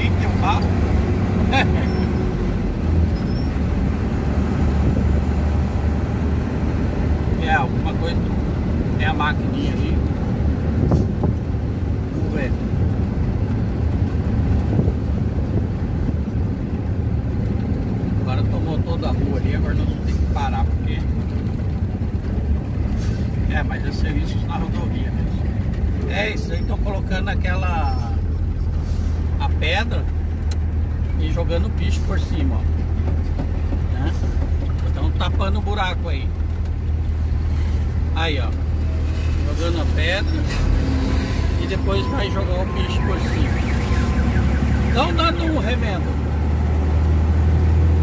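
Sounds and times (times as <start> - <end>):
road noise: 0.0 - 48.0
truck engine drone: 0.0 - 48.0.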